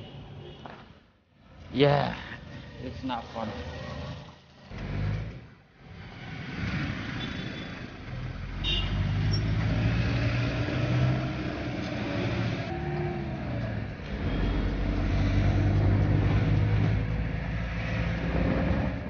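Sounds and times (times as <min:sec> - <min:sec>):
street traffic: 0:00.0 - 0:19.0
minibus engine and road noise: 0:02.4 - 0:19.0.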